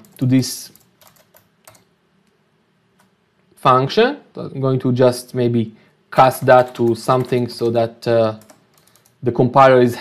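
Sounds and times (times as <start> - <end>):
computer keyboard keystrokes: 0.0 - 1.9, 6.4 - 7.8, 8.4 - 9.2.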